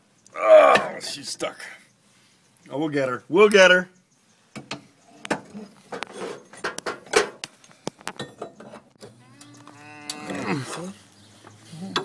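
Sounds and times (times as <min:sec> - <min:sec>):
man straining vocally: 0:00.3 - 0:01.2
metal scraping: 0:05.2 - 0:07.4.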